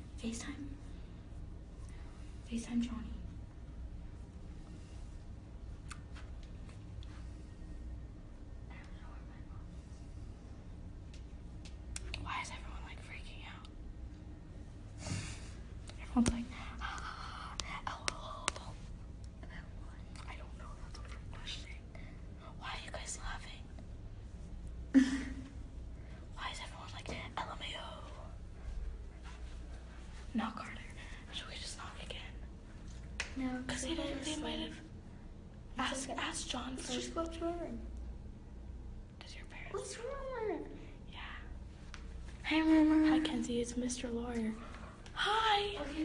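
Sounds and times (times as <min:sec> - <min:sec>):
low steady hum: 0:00.0 - 0:46.0
girls whispering: 0:08.6 - 0:09.8, 0:12.0 - 0:13.8, 0:15.9 - 0:23.8, 0:26.3 - 0:28.8, 0:30.3 - 0:32.5, 0:33.4 - 0:35.0, 0:35.8 - 0:37.9, 0:39.2 - 0:41.6
person whispering: 0:15.9 - 0:23.8.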